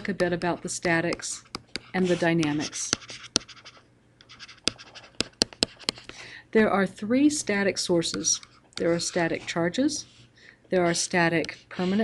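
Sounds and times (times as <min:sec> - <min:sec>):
stylus scratching on a screen: 0:00.4 - 0:06.1, 0:08.1 - 0:12.0.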